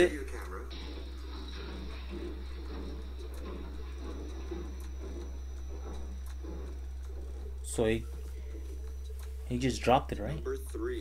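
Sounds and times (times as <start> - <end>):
muffled indistinct sounds: 0.0 - 11.0
steady low hum: 0.0 - 11.0.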